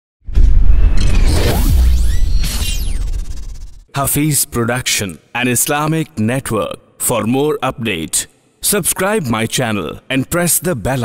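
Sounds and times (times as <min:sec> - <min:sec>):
loud whoosh: 0:00.3 - 0:03.9.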